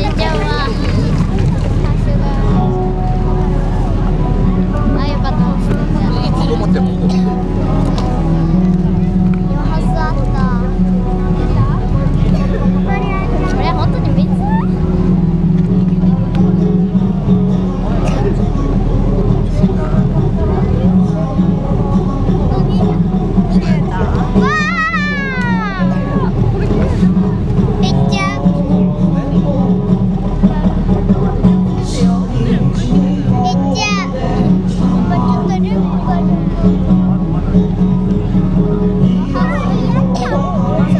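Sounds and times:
live music through sound system: 0.0s - 40.9s
loud low mechanical drone: 0.0s - 40.9s
voice: 0.0s - 40.9s
child's high voice: 24.4s - 26.4s, 33.4s - 34.2s, 39.4s - 40.6s.

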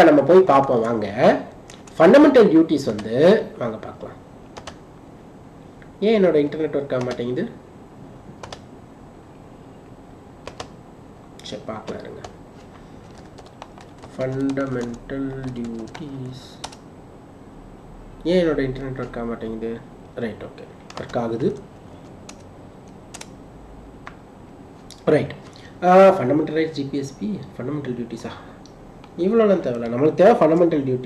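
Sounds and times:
low room hiss: 0.0s - 31.0s
computer mouse clicks: 1.7s - 2.0s, 4.6s - 4.8s, 8.4s - 8.7s, 10.4s - 10.7s, 22.0s - 23.3s.

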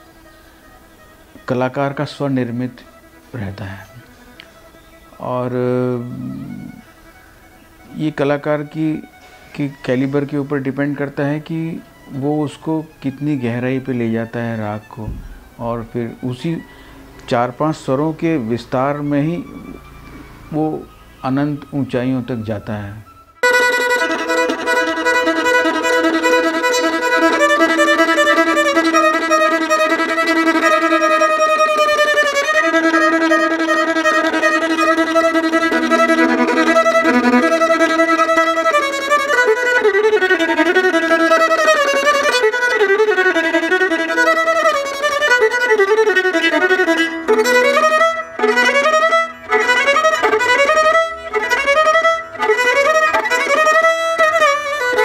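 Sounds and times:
solo violin with sliding notes: 0.0s - 55.0s.

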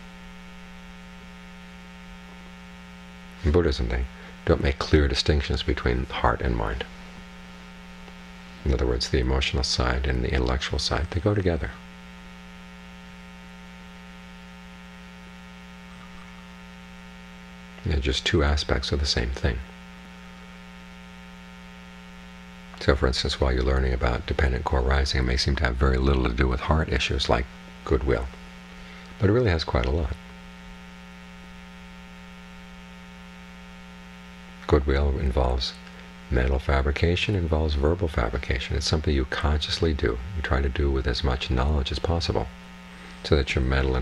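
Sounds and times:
electrical mains hum: 0.0s - 44.0s.

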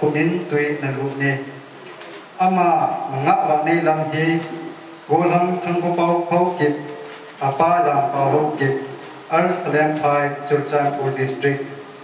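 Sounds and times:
man speaking through pa system: 0.0s - 1.6s, 2.4s - 11.8s.

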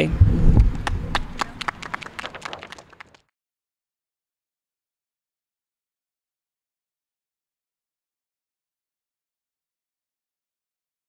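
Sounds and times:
small group clapping: 0.6s - 3.3s.

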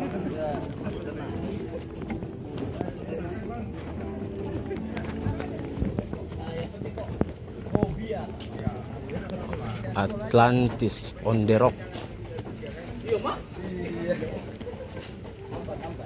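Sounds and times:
footsteps on wooden boardwalk: 0.0s - 16.0s
people chattering: 0.0s - 16.0s.

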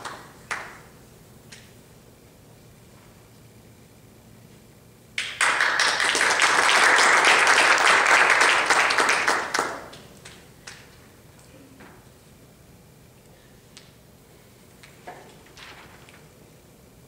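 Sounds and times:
audience applauding: 5.2s - 10.1s.

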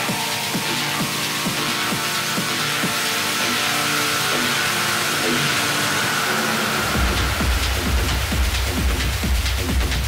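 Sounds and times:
kick drum and bass: 0.0s - 10.0s.

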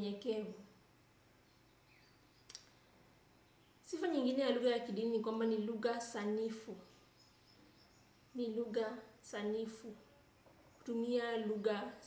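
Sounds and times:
sharp click: 2.5s - 2.8s.

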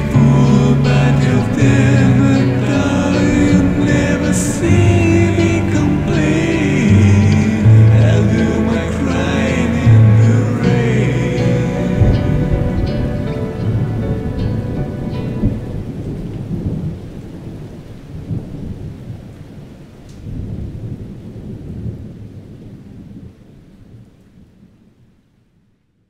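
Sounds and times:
music held notes: 0.0s - 17.0s
low rolling thunder: 0.0s - 24.8s
rain: 0.0s - 26.0s.

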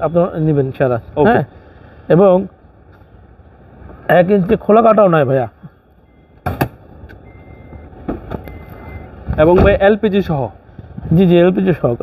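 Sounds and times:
faint high beeping: 5.8s - 6.4s, 7.2s - 9.2s.

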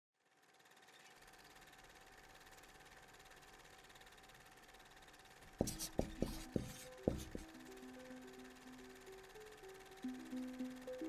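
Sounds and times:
thin steady tone: 0.2s - 11.0s.

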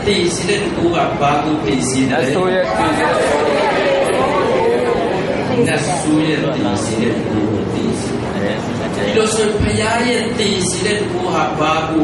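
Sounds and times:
man talking into a microphone: 0.0s - 3.3s, 5.6s - 12.0s.

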